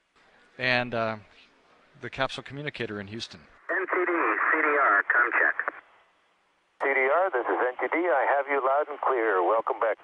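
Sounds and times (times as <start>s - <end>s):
voice over radio: 3.7s - 5.8s, 6.8s - 10.0s.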